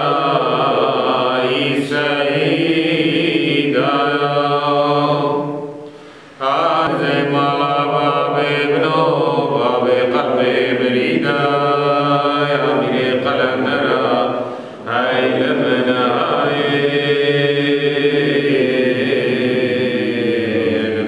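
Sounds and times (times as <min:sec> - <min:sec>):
men chanting a hymn: 0:00.0 - 0:05.8, 0:06.4 - 0:21.0.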